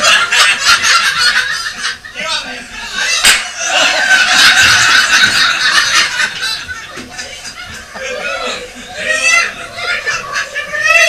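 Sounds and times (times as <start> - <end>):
people laughing and chattering: 0.0 - 11.0.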